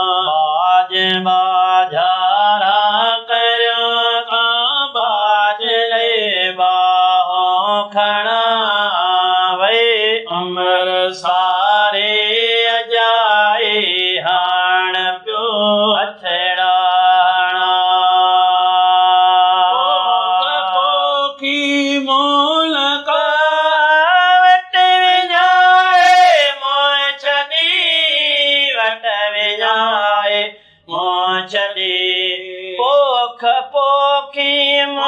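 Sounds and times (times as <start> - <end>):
two men chant-singing: 0.0 - 35.0
singers breathing: 30.5 - 30.9.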